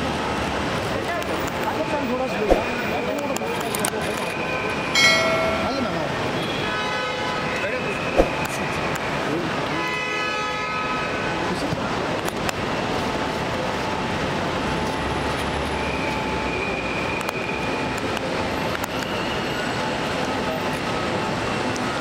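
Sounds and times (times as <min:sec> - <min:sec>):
busy background din: 0:00.0 - 0:22.0.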